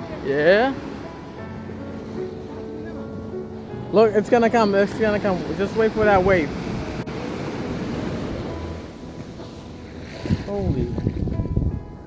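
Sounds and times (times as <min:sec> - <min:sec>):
wave washing up sand: 0:00.0 - 0:11.5
wind on microphone: 0:06.2 - 0:12.0.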